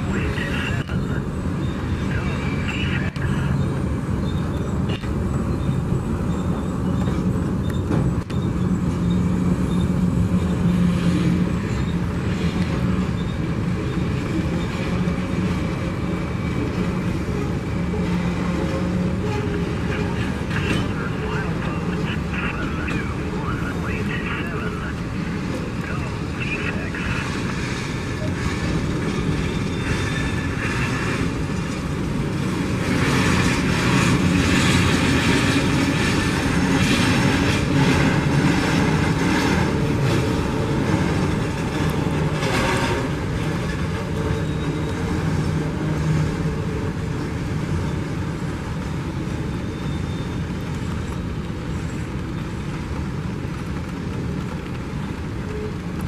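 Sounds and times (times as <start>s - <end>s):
train wheels rumbling on rails: 0.0s - 56.0s.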